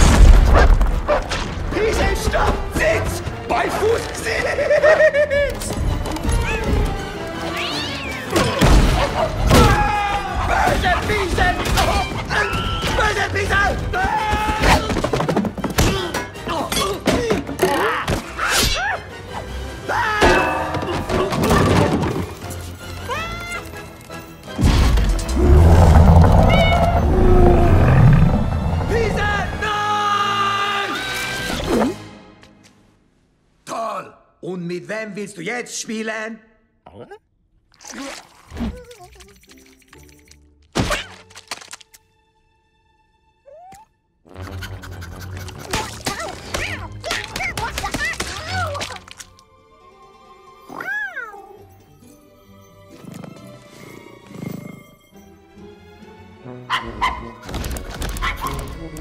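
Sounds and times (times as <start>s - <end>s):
loud deep rumble: 25.3s - 29.7s
soft background music: 45.3s - 59.0s
cartoon cat yowling: 50.7s - 51.6s.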